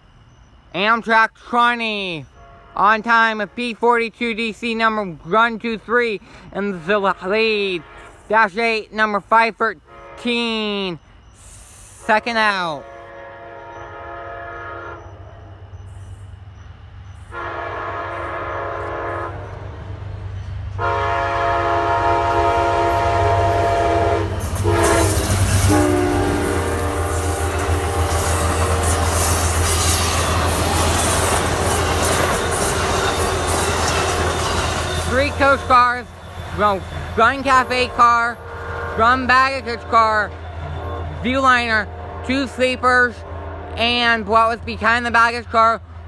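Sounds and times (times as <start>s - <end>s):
train passing close by: 0.0s - 46.0s
train horn: 2.3s - 3.0s, 7.1s - 8.3s, 9.8s - 10.6s, 12.0s - 15.5s, 17.3s - 19.8s, 20.7s - 43.9s.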